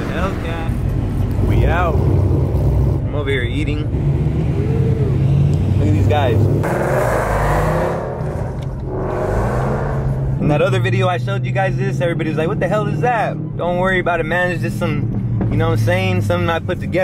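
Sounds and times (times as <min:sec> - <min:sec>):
car engine rumble: 0:00.0 - 0:17.0.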